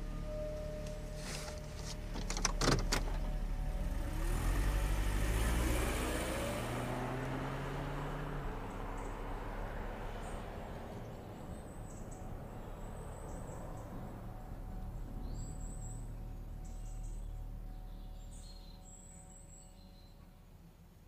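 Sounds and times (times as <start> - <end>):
car engine accelerating: 0.0 - 19.6.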